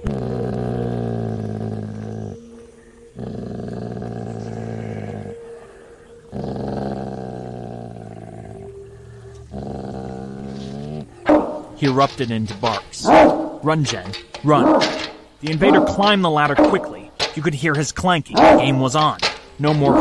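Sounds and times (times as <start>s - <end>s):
dog growling: 0.0s - 17.5s, 18.3s - 20.0s.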